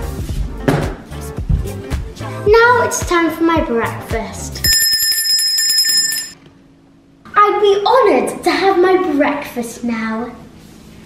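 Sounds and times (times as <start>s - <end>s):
hand bell ringing: 4.6s - 6.4s.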